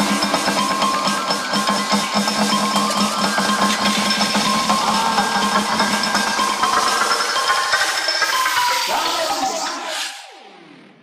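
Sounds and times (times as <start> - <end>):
house music with synth and bass: 0.0 - 11.0.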